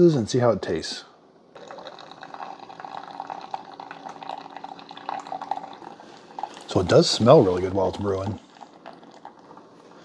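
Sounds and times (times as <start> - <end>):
coffee pouring into mug: 1.6 - 9.8
coffee maker humming: 1.6 - 10.0.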